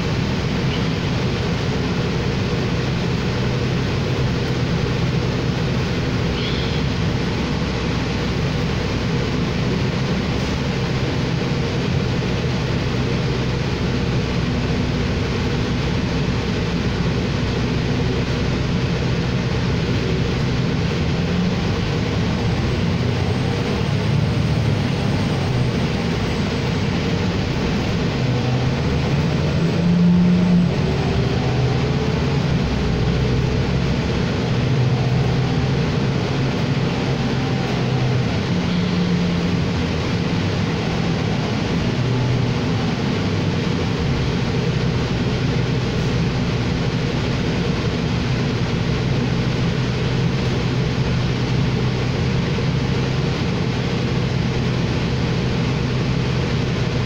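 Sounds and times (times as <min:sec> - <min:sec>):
bus cabin road and engine noise: 0:00.0 - 0:57.0.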